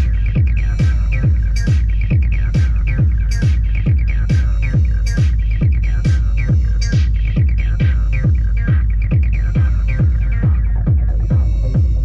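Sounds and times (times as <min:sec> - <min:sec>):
synthesized kick drum: 0:00.0 - 0:12.0.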